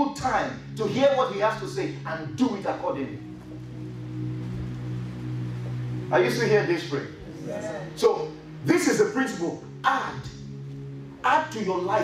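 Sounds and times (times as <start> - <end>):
electronic keyboard low chord: 0.0 - 12.0.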